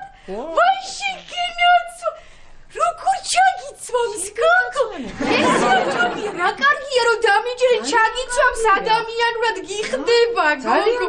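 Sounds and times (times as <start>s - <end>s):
woman speaking: 0.3s - 11.0s.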